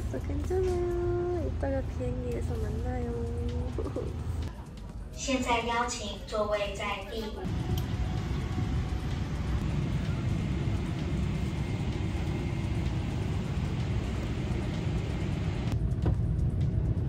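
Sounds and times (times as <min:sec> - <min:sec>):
jet engine rumble in cabin: 0:07.5 - 0:17.0.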